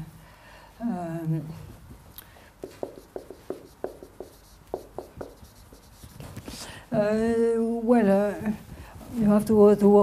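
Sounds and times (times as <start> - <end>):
marker pen on whiteboard: 2.3 - 7.1.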